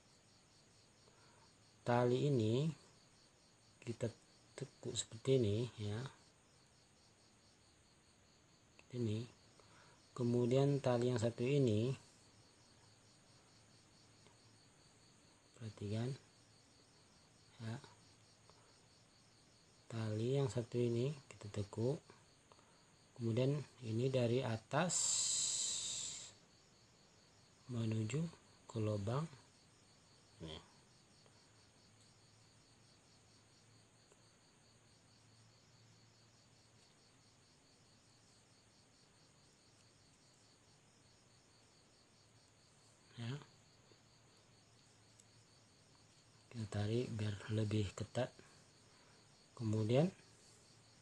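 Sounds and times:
insect chirping: 0:00.0 - 0:51.0.

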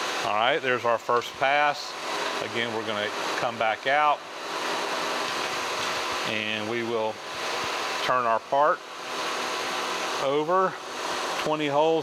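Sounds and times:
milling machine running: 0:00.0 - 0:12.0.

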